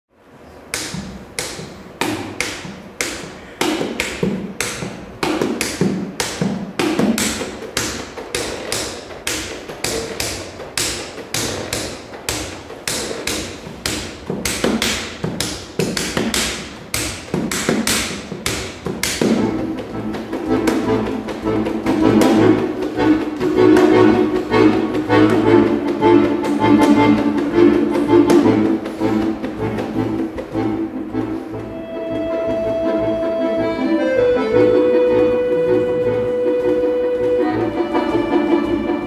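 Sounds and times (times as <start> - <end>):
hand tapping on accordion body: 0.5 - 39.0.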